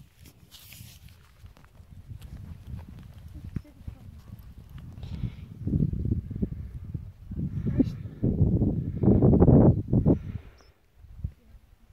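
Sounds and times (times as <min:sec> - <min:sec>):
footsteps on dry mud: 0:00.0 - 0:05.0.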